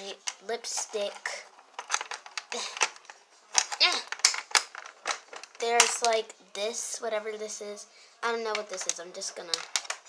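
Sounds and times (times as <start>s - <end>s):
plastic toy parts clicking: 0.2s - 6.2s, 8.5s - 10.0s.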